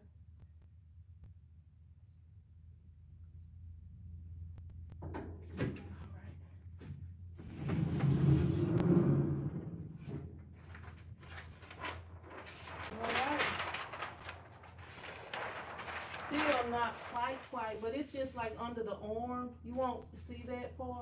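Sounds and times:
paper rustling: 10.6 - 18.5.

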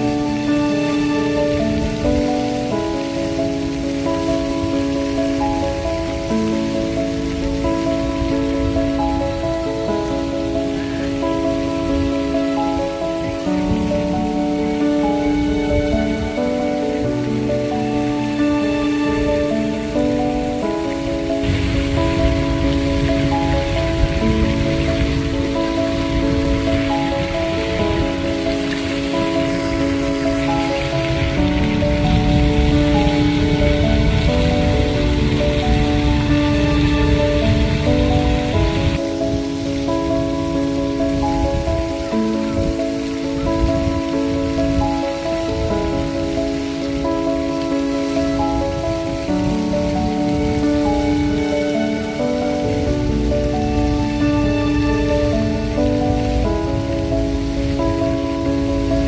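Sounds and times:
background music with sustained notes: 0.0 - 59.0
fountain spray hissing: 0.0 - 59.0.

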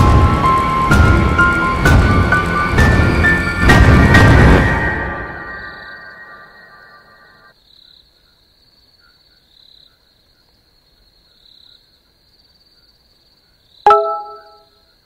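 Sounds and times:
music: 0.0 - 6.6
bell-like chime: 13.9 - 14.6.

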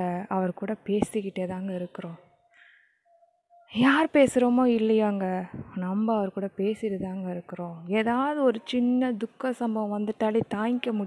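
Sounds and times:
woman talking: 0.0 - 2.2, 3.7 - 11.0.

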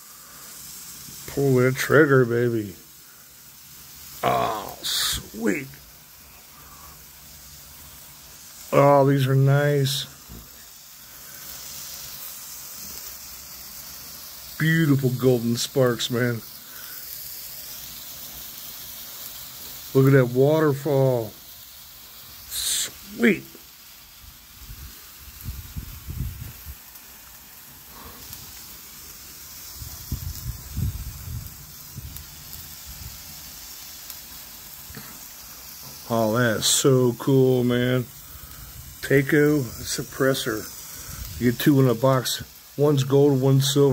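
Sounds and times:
hiss of spraying sparks: 0.0 - 43.9.

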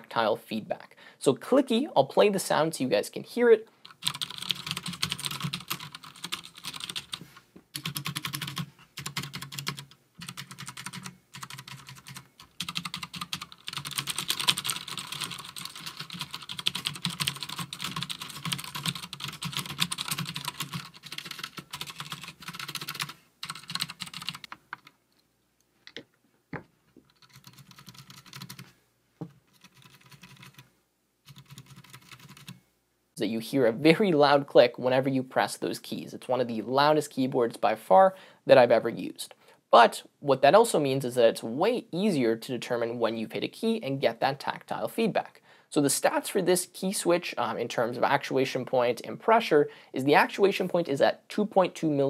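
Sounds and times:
clicky mechanical keyboard typing: 3.9 - 7.2, 7.8 - 24.9, 27.1 - 28.7, 29.6 - 30.6, 31.3 - 32.6.

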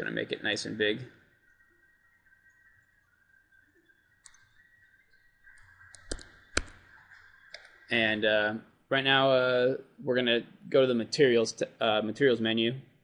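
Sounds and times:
faint high whine: 0.0 - 13.0
computer mouse clicks: 4.2 - 4.6, 5.5 - 7.8.

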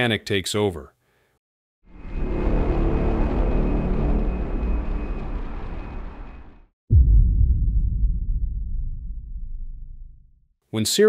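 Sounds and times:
ominous low rumble with music: 1.9 - 10.4.

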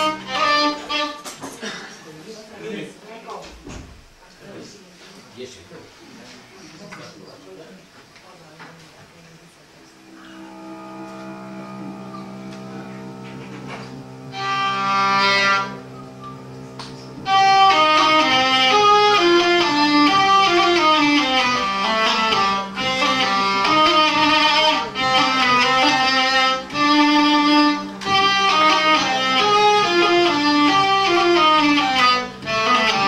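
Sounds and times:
hurdy-gurdy chord: 0.0 - 1.4, 10.0 - 33.0
hurdy-gurdy drone: 0.0 - 1.4, 9.9 - 33.0
hurdy-gurdy quick melody: 0.0 - 1.4, 10.0 - 33.0.

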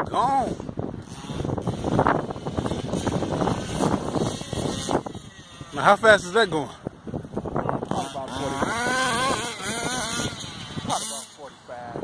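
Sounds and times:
small nitro engine running: 0.3 - 6.6, 7.8 - 11.5.

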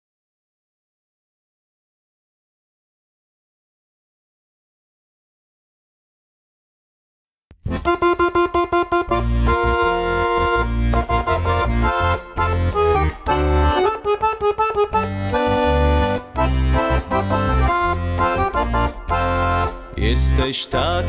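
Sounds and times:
accordion playing: 7.6 - 21.0.

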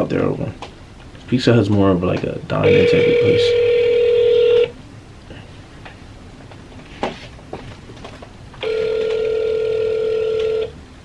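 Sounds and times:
telephone ringback tone: 2.6 - 4.7, 8.6 - 10.8.

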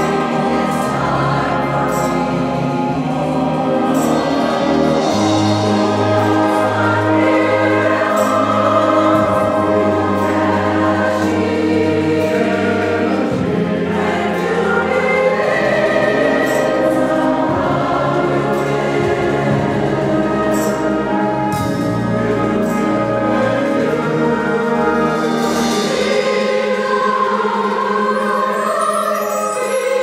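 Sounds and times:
mixed choir singing: 0.0 - 30.0
orchestra playing: 0.0 - 30.0.

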